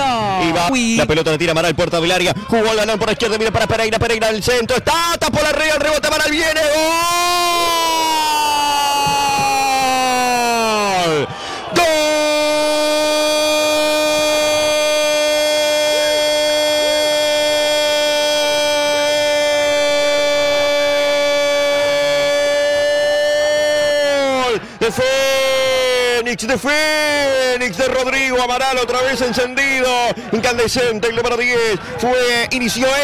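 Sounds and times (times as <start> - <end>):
commentator shouting goal: 0.0 - 33.0.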